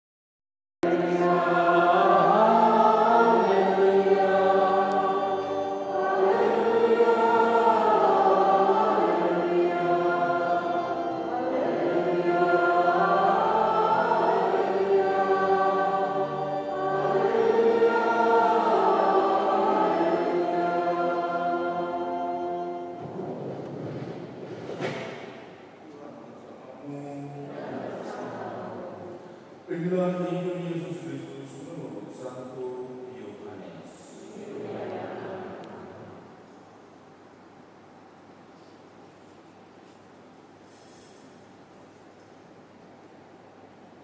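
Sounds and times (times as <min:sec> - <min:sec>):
church choir singing: 0:00.8 - 0:25.4, 0:27.0 - 0:36.5.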